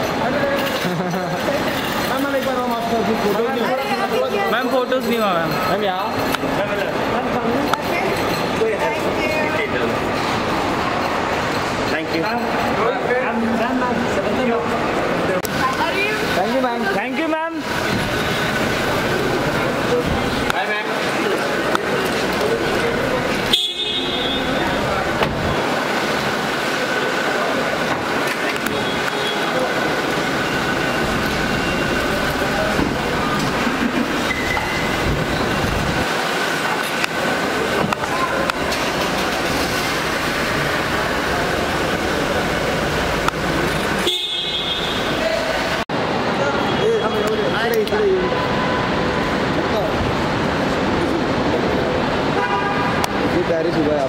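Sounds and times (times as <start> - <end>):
indistinct voices: 0.0 - 44.0
car park rumble: 0.0 - 54.0
traffic noise: 0.0 - 54.0.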